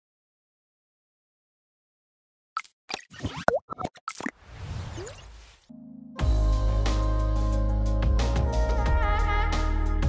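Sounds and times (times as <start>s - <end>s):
cartoon pops and blips: 2.6s - 5.3s.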